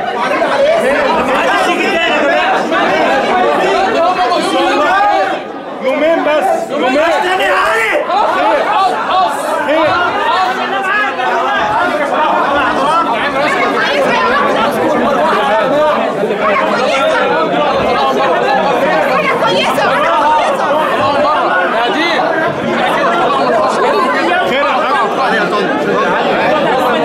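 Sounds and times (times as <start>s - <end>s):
crowd chatting: 0.0s - 27.0s.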